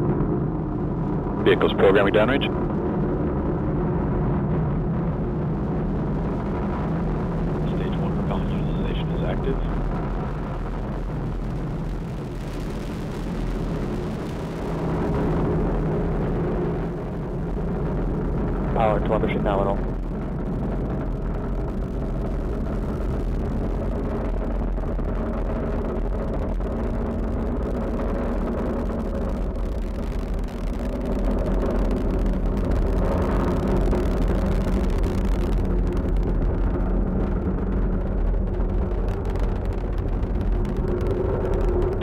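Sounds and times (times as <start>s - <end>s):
distant rocket engines rumbling: 0.0s - 42.0s.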